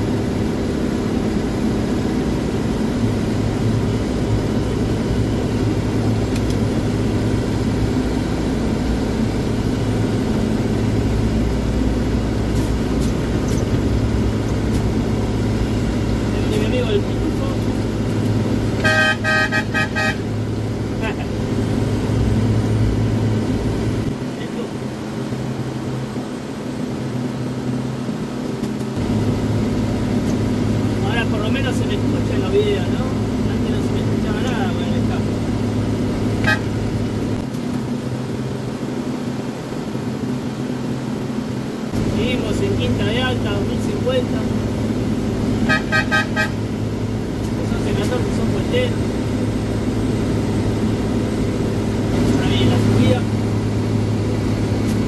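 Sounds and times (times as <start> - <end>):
truck diesel engine running: 0.0 - 55.0
vehicle horn: 18.8 - 20.4, 36.4 - 36.8, 45.6 - 46.8.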